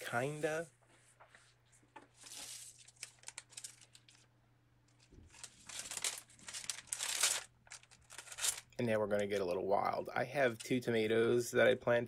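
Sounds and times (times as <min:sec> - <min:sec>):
plant stems rustling: 0:04.9 - 0:08.8.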